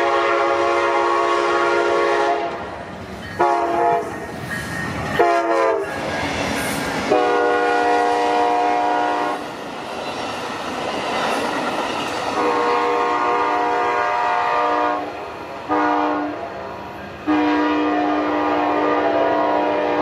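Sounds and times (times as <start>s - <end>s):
train air horn blasts: 0.0s - 2.7s, 3.4s - 4.2s, 5.2s - 5.9s, 7.1s - 9.4s, 12.4s - 16.6s, 17.2s - 20.0s
train wheels clattering on rails: 2.4s - 14.0s.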